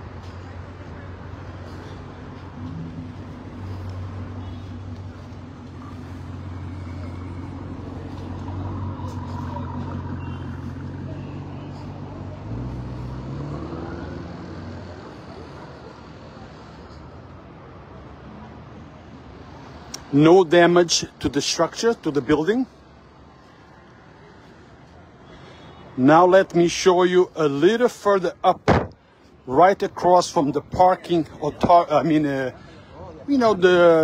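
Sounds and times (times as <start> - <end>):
large vehicle engine humming: 0.0 - 34.0
street traffic: 0.0 - 34.0.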